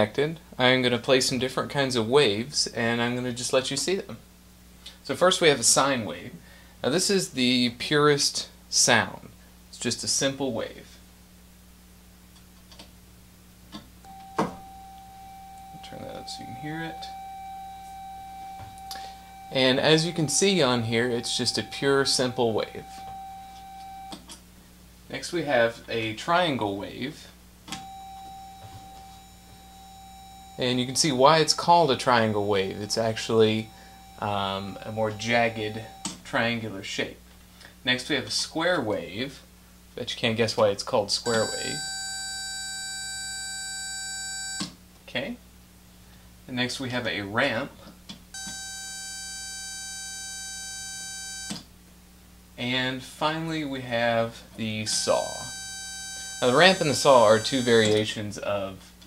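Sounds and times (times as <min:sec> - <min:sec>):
faint hum: 0:00.0 - 0:59.0
synthesizer sine tone: 0:14.0 - 0:24.2, 0:27.8 - 0:36.1, 0:41.3 - 0:44.7, 0:48.4 - 0:51.6, 0:54.8 - 0:58.0.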